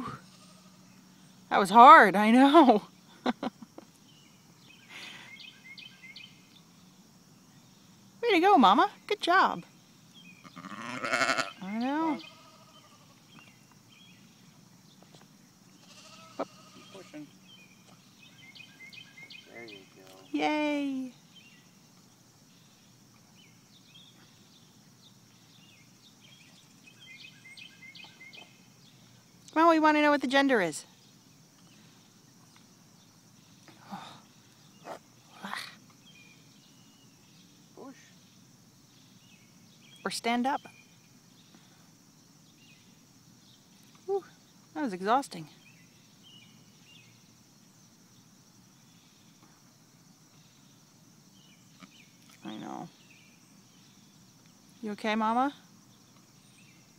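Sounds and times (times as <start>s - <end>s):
faint steady high hiss: 0.0s - 56.9s
small birds chirping: 0.0s - 56.9s
high-pitched insect drone: 15.7s - 21.8s.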